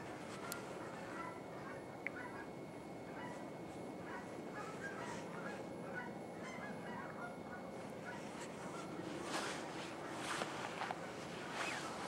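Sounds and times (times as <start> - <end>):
distant flock of birds calling: 0.0 - 12.0
steady background hiss: 0.0 - 12.0.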